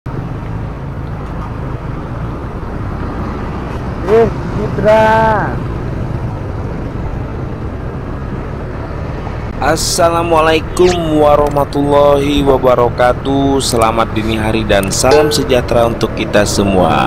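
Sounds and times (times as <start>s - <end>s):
motorcycle engine and road noise: 0.1s - 17.0s
person speaking: 14.6s - 17.0s.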